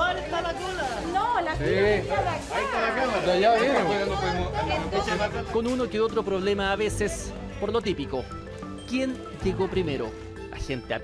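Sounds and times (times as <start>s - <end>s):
people talking over one another: 0.0s - 10.2s.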